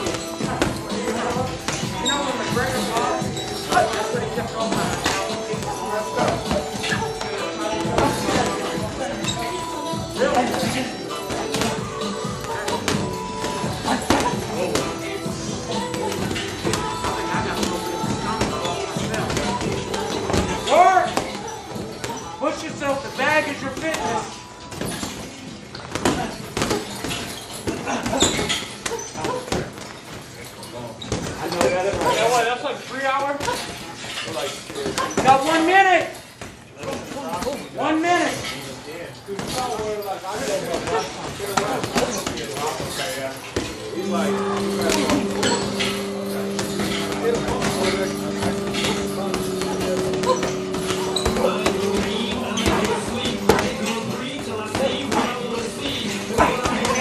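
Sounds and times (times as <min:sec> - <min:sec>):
background voices: 0:43.7 - 0:57.0.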